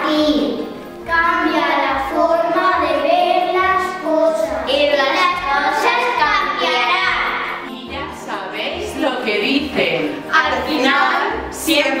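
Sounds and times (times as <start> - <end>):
backing music with steady beat: 0.0 - 12.0
children singing: 1.2 - 7.7.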